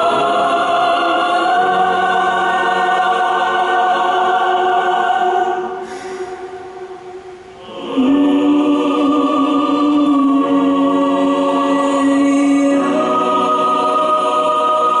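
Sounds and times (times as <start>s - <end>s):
choir singing held chords: 0.0s - 15.0s.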